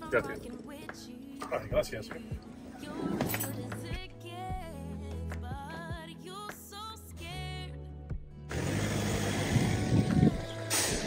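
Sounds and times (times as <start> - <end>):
background music with singing: 0.0 - 11.0.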